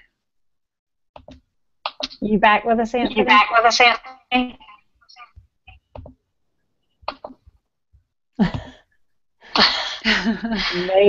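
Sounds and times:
women laughing: 10.0 - 11.0.

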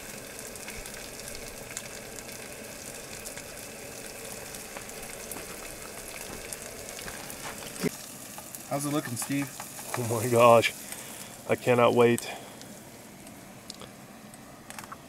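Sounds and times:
meat sizzling in a frying pan: 0.0 - 13.4.

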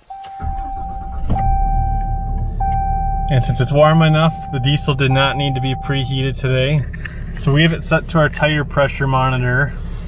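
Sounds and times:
electronic chime tone: 0.0 - 6.2
diesel engine starting and idling: 0.0 - 10.0.

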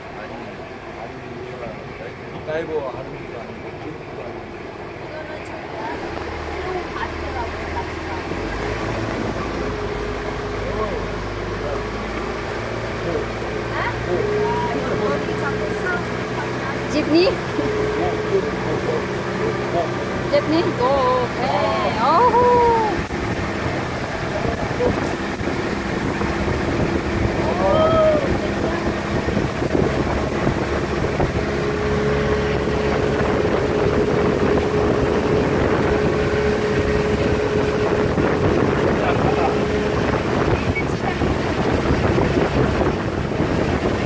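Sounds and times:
boat engine rumbling: 0.0 - 44.0
water noise: 0.0 - 44.0
wind: 0.0 - 44.0.

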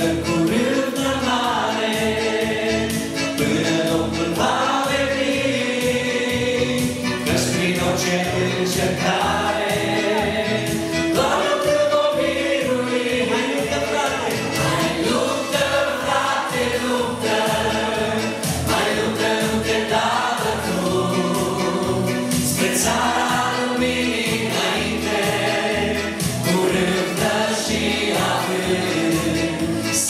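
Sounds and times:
man and woman singing: 0.0 - 30.0.

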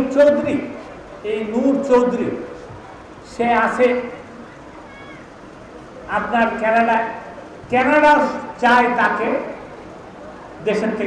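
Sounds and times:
man speaking into a microphone: 0.0 - 2.6, 3.2 - 4.2, 6.1 - 9.6, 10.6 - 11.0.

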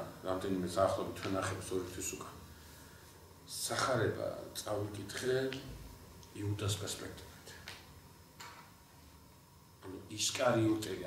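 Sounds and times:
man speaking: 0.0 - 2.4, 3.5 - 7.3, 9.8 - 11.0.

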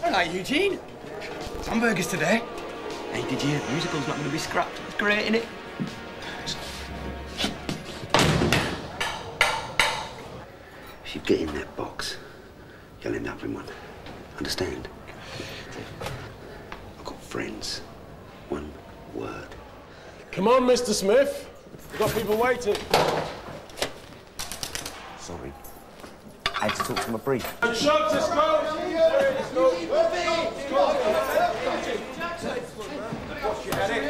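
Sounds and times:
heavy steel door slamming: 8.1 - 9.0.

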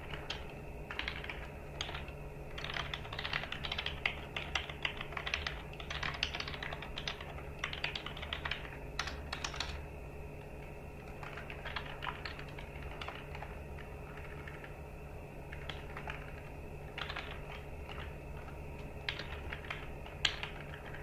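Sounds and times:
computer keyboard typing: 0.0 - 9.8, 10.5 - 14.8, 15.5 - 21.0
steady low hum: 0.0 - 21.0.

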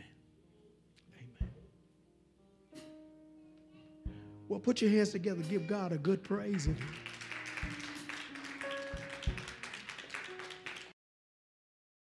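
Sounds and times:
music with held notes: 1.6 - 10.9
congregation clapping: 6.3 - 11.0.

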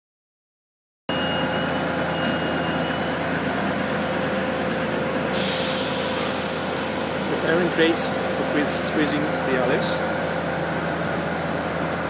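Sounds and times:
forklift engine running: 1.1 - 12.0
hiss: 5.3 - 8.5.

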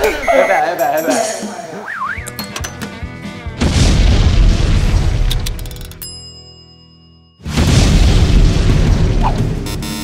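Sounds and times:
background music: 0.0 - 10.0
cartoon explosion boom: 3.6 - 5.3, 7.4 - 9.6.

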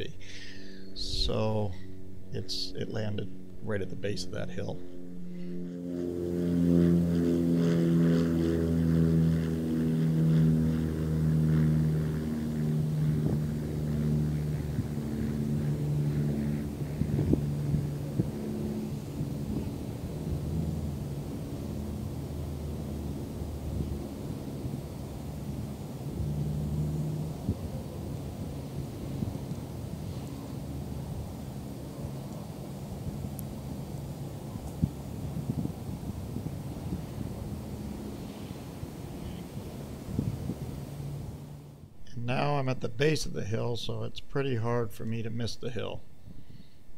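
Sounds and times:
distant engine drone: 0.0 - 46.9
wind on microphone: 11.4 - 21.4, 28.8 - 30.2, 34.5 - 41.5.

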